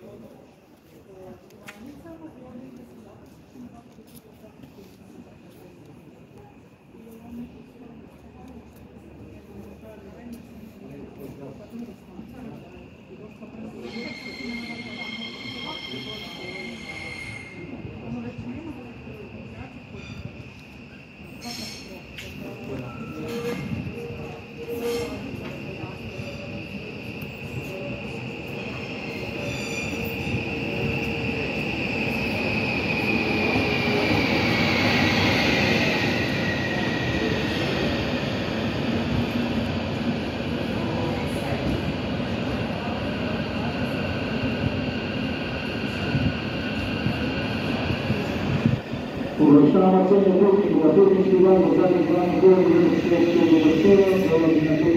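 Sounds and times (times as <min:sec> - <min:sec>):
electric train pulling in: 0:12.4 - 0:54.9.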